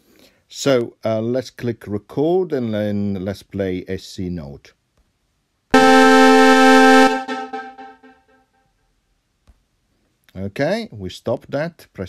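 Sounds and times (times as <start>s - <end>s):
synthesizer note: 5.8s - 8.1s.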